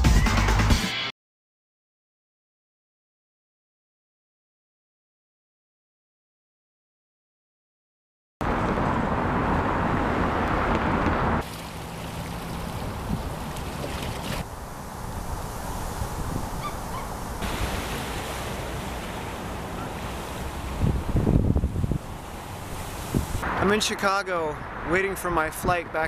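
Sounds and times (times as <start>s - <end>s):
waves washing among ice: 11.4s - 14.5s, 15.1s - 23.4s
wind on microphone: 12.6s - 23.6s.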